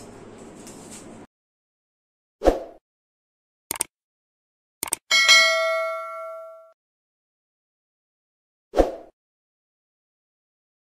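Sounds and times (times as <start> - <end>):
quick double click: 3.7 - 3.9, 4.8 - 5.0
bright bell ding: 5.1 - 6.8.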